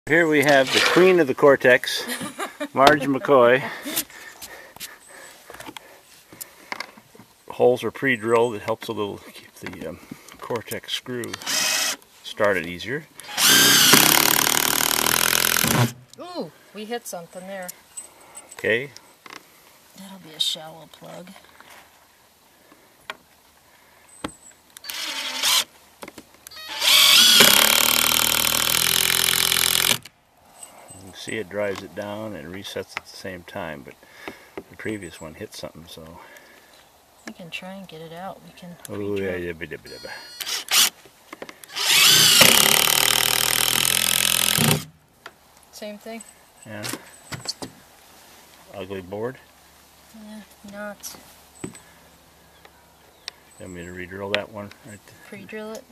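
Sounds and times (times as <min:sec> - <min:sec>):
impact driver driving screw: 0:00.4 - 0:01.1, 0:11.3 - 0:12.0, 0:13.2 - 0:16.0, 0:24.8 - 0:25.7, 0:26.6 - 0:30.1, 0:41.7 - 0:44.9.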